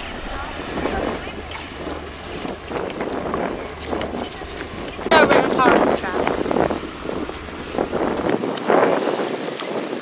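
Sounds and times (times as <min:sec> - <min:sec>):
shallow water lapping: 0:00.0 - 0:10.0
wind buffeting microphone: 0:00.0 - 0:10.0.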